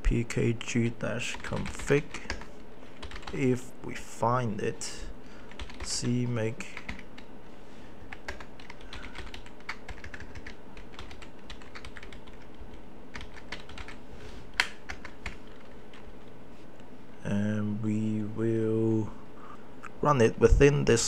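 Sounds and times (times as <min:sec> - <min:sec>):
typing on computer keyboard: 0:01.3 - 0:03.4, 0:05.5 - 0:07.3, 0:08.1 - 0:14.0, 0:14.6 - 0:16.0.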